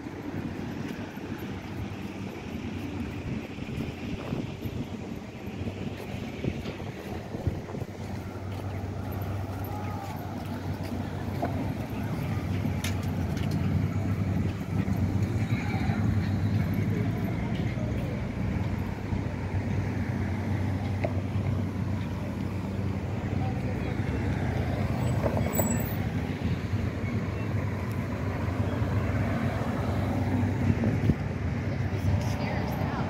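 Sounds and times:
cars passing: 0.0 - 33.0
faint voices of passers-by: 0.0 - 33.0.

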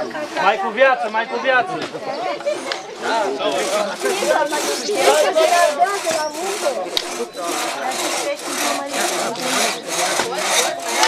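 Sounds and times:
crosscut saw rasping through log: 2.4 - 11.0.

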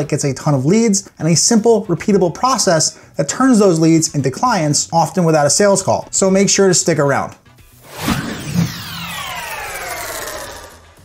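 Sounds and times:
synthesized tone gliding down: 7.8 - 11.0.

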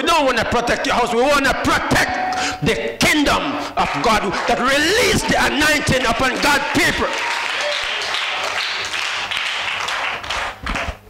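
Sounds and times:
congregation applauding: 3.3 - 11.0.

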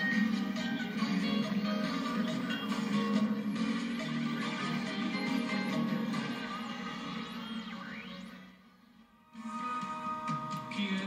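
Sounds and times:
music from a tube radio: 0.0 - 11.0.

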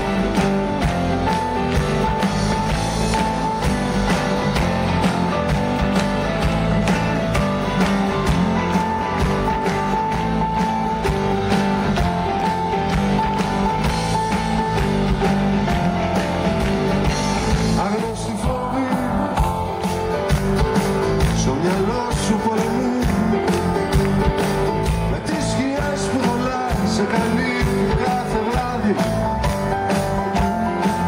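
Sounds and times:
drum kit beat: 0.0 - 31.0
electric guitar: 0.0 - 31.0.

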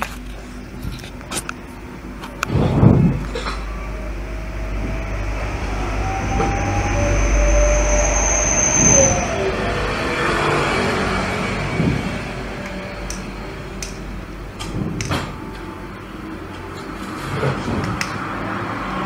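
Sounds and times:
low rumble: 0.2 - 16.8
faint high whistling tone: 3.6 - 11.1.

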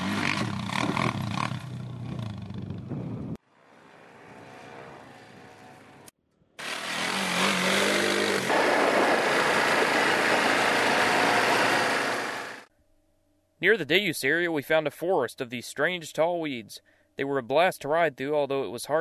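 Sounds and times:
atv engines running: 0.0 - 3.0, 3.6 - 12.7
wind rushing on microphone: 2.1 - 3.4.

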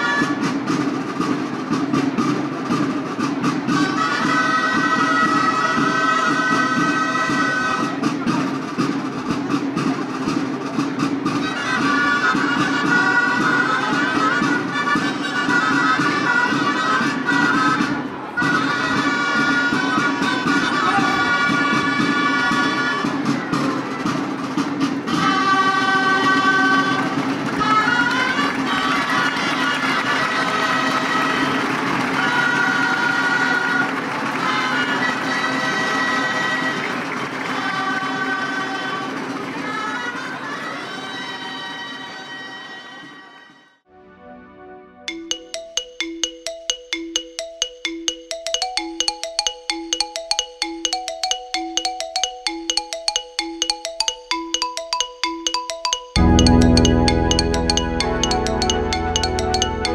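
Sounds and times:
crowd noise: 0.0 - 42.1
double-reed shawms playing melody: 45.1 - 59.9.

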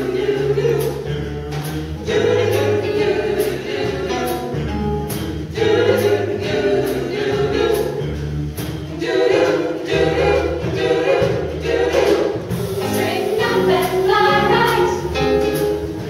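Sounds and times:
choir singing in harmony: 0.0 - 16.0
sung bass line: 0.0 - 16.0.

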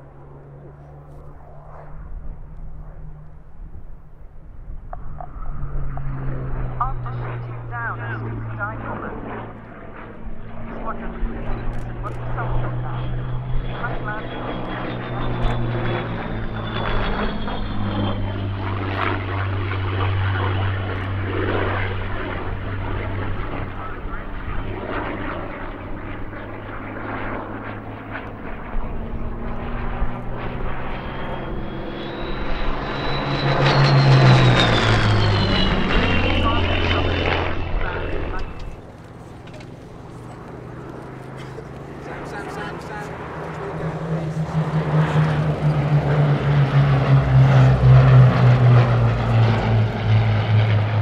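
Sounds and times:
propeller plane engine: 0.0 - 51.0.

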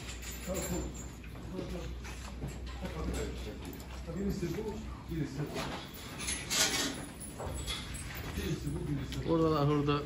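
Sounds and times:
people talking: 8.3 - 10.0.

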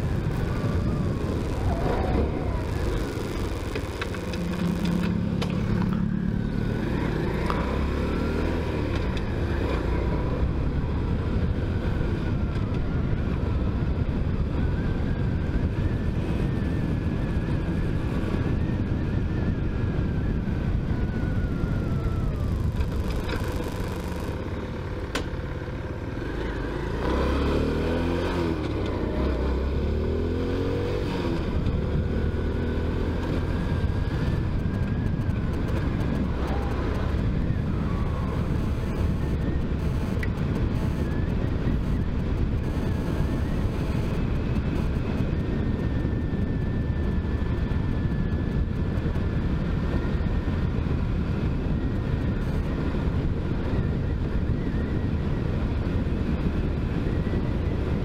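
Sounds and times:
motorcycle engine revving: 0.0 - 13.2, 21.2 - 58.0
wind rushing over microphone: 0.0 - 58.0.

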